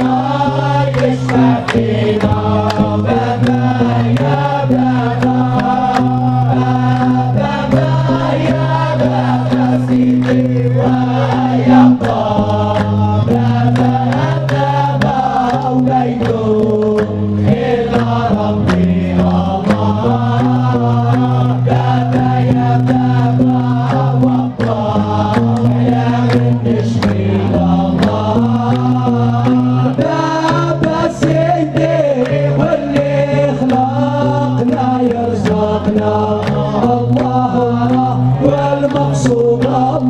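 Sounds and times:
men chanting in a group: 0.0 - 40.0
steady percussive beat: 0.0 - 40.0.

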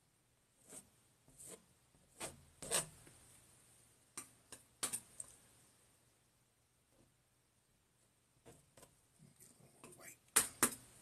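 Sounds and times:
palette knife scraping paint: 0.6 - 3.0.

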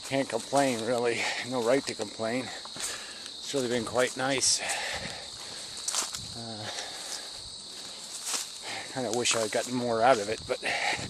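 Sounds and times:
insect chorus: 0.0 - 11.0
man murmuring: 0.2 - 2.6, 6.4 - 7.2, 8.7 - 11.0.

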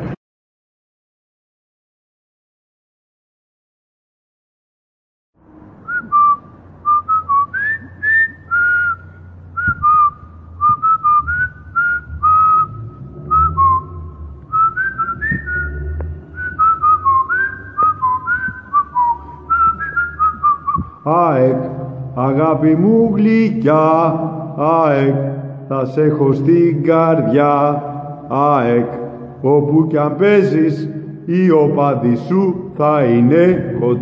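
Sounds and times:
low rumble: 5.4 - 34.0
person whistling a tune: 5.8 - 21.0.

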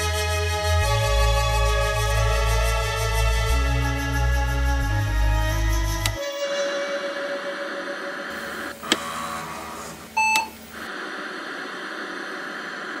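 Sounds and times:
steady noise: 6.9 - 13.0
short electronic beep: 10.2 - 10.6.

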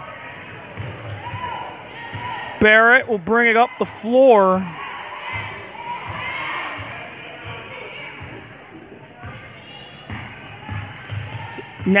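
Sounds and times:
crowd chatter: 0.0 - 12.0
basketball dribbling on gym floor: 10.1 - 12.0.

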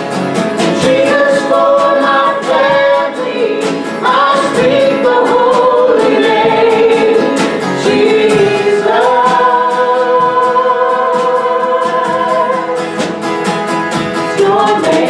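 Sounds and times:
strummed acoustic guitar: 0.0 - 15.0
group singing slow praise song: 0.6 - 13.3, 14.2 - 15.0.

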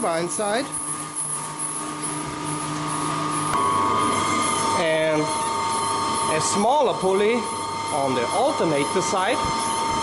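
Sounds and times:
generator hum and whine: 0.0 - 10.0.

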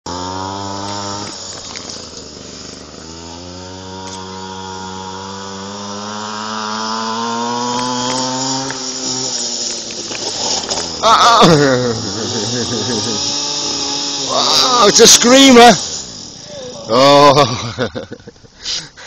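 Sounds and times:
pocket bike engine revving: 0.0 - 18.3.

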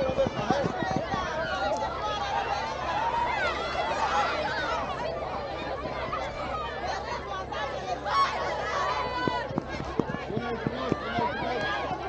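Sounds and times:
children shouting: 0.0 - 12.0
crowd chatter: 0.0 - 12.0.

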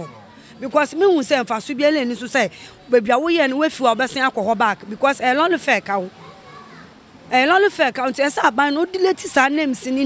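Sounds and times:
faint children's voices: 0.0 - 4.8, 5.6 - 7.9
woman speaking: 0.6 - 6.1, 7.3 - 10.0.

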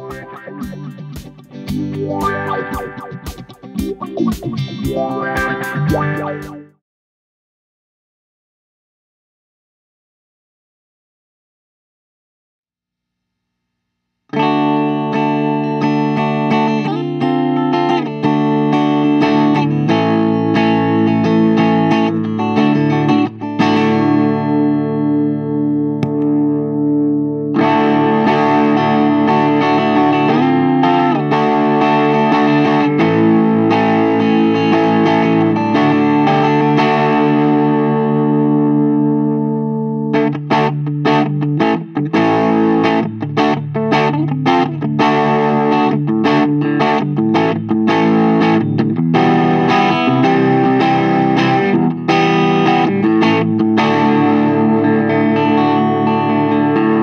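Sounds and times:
distorted electric guitar chords: 0.0 - 6.8, 14.3 - 57.0.

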